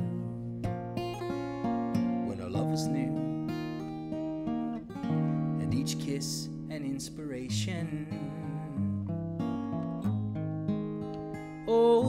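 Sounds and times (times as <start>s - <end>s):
acoustic guitar jazz chords: 0.0s - 12.0s.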